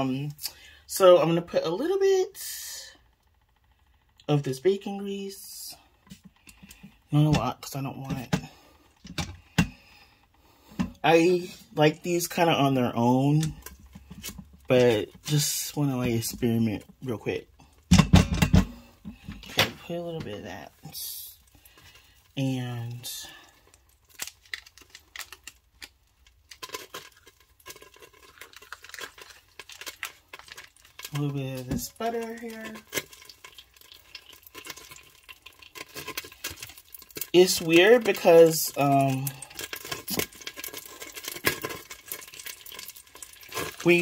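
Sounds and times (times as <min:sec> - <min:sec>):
packaging crinkling and clicking: 0:23.6 - 0:44.0.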